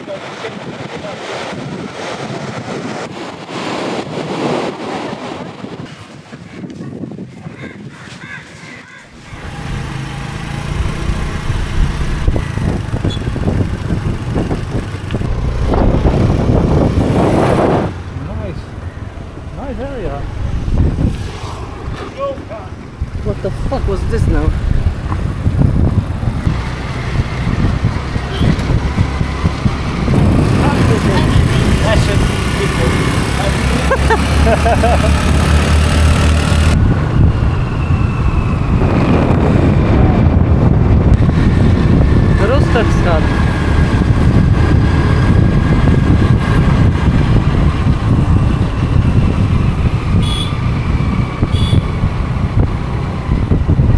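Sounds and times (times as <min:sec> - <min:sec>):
wind rushing on microphone: 0:00.0 - 0:53.9
motor scooter engine running: 0:09.4 - 0:17.1, 0:26.6 - 0:36.8.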